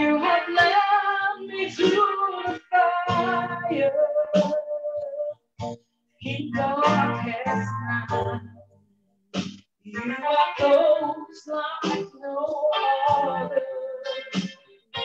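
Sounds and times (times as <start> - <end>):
person singing a melody: 0.0 - 5.4, 6.2 - 8.5, 9.8 - 15.0.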